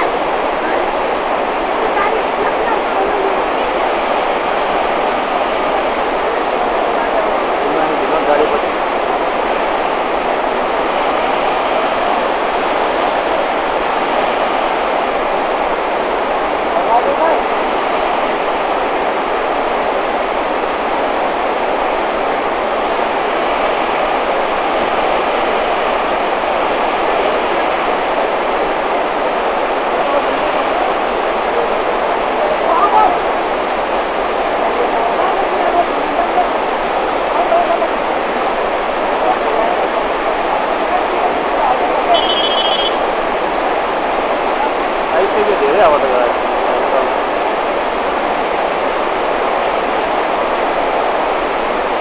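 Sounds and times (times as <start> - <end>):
white water rushing over rocks: 0.0 - 52.0.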